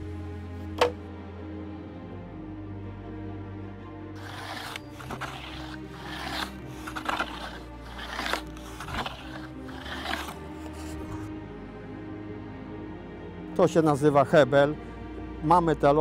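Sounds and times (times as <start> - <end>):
background music: 0.0 - 16.0
hand tool scraping wood: 4.2 - 11.3.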